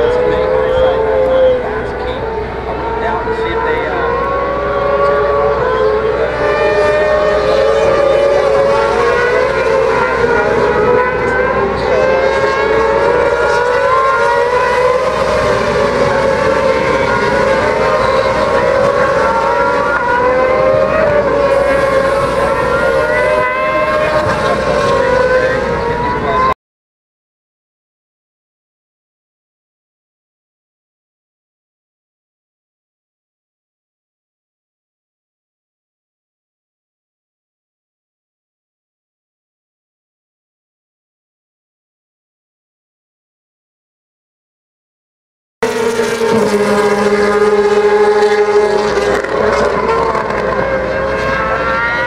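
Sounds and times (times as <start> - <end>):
race motorcycles revving: 0.0 - 26.6, 45.6 - 52.0.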